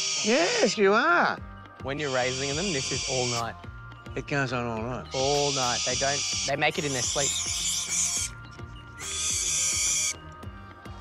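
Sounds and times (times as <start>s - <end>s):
owl chick hissing screech: 0.0s - 0.7s, 2.0s - 3.6s, 5.1s - 8.4s, 9.0s - 10.2s.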